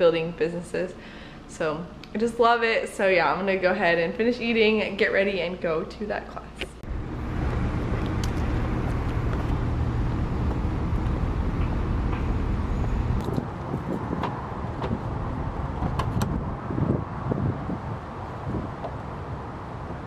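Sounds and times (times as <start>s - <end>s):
low outdoor rumble: 6.4s - 20.0s.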